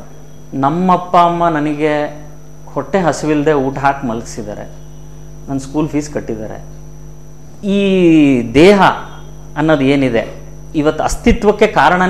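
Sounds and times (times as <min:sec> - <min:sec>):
man speaking: 0:00.0 - 0:04.8, 0:05.5 - 0:06.7, 0:07.6 - 0:12.0
electrical mains hum: 0:00.0 - 0:12.0.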